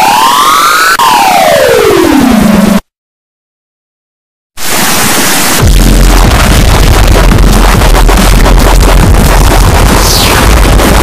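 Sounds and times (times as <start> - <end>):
synthetic tone gliding like a siren: 0.0 - 2.8.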